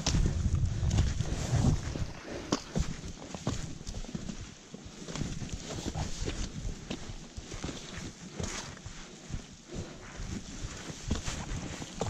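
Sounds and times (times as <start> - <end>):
footsteps on loose stones: 0.0 - 12.0.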